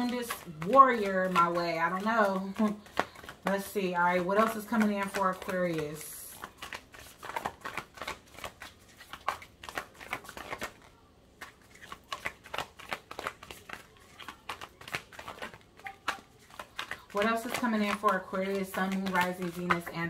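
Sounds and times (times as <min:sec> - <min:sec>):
cards shuffled by hand: 0:00.0 - 0:20.0.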